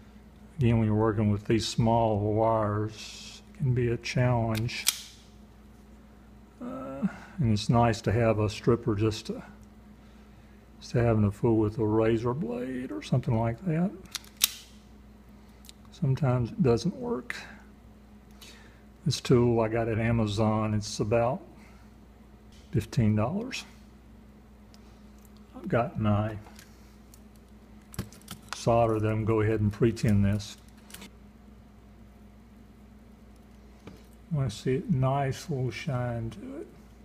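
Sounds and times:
faint low hum with hiss: 0.0s - 37.0s
wire stripper click: 4.5s - 5.2s, 14.0s - 14.7s
wire stripper jaws snapping: 4.5s - 5.2s, 14.0s - 14.7s.

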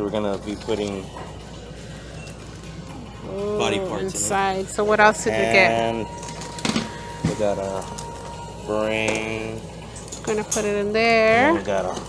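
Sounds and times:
faint background music: 0.0s - 12.0s
low shop ambient noise: 0.0s - 12.0s.

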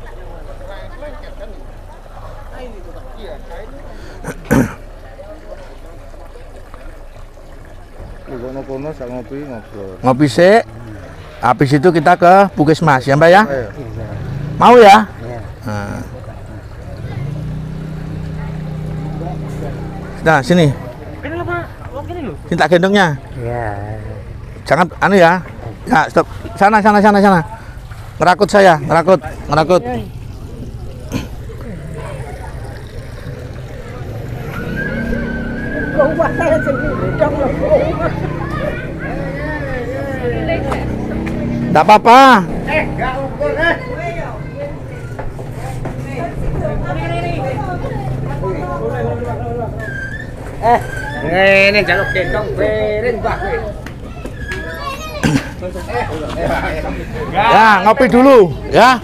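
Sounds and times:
voices talking: 0.0s - 59.0s.

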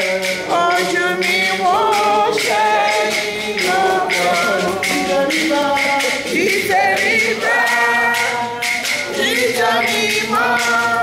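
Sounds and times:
congregation singing a hymn: 0.0s - 11.0s
percussion beat: 0.0s - 11.0s.

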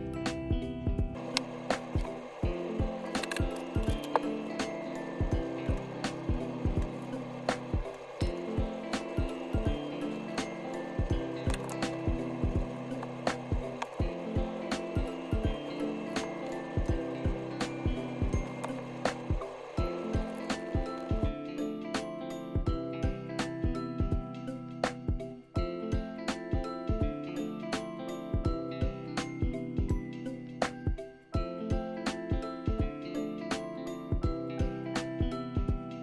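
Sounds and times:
soft background music: 0.0s - 36.0s.

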